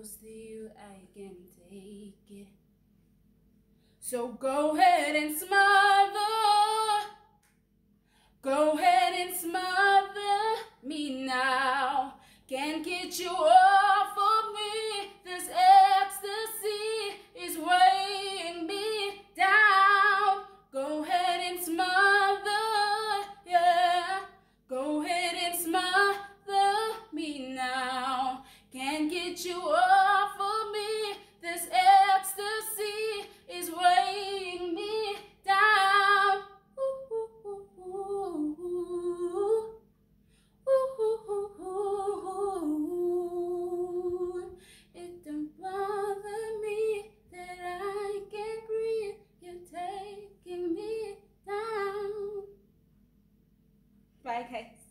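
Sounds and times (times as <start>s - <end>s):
woman singing unaccompanied: 0.0s - 2.6s, 4.0s - 7.2s, 8.4s - 39.8s, 40.7s - 52.5s.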